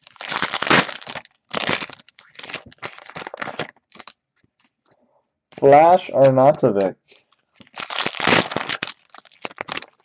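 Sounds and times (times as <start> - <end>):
foil wrapper crinkling: 0.0 - 4.8, 7.2 - 10.0.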